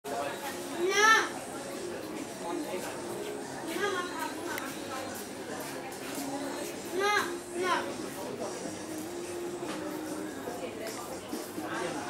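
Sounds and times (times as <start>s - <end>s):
people talking: 0.1s - 8.7s.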